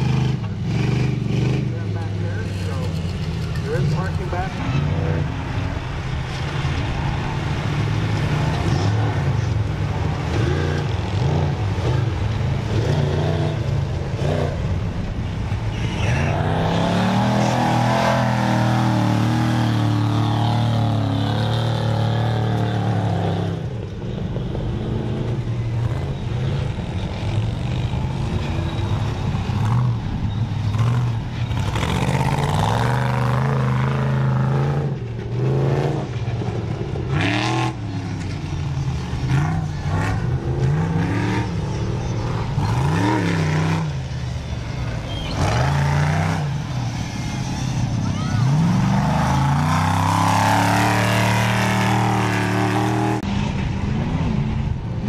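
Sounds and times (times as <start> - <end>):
truck engines revving: 0.0 - 55.0.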